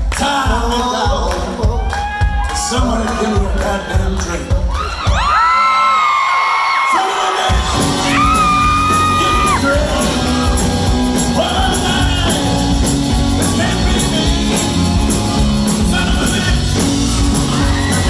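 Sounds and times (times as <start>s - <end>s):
audience whooping and screaming: 1.8s - 18.0s
live band playing: 7.5s - 18.0s.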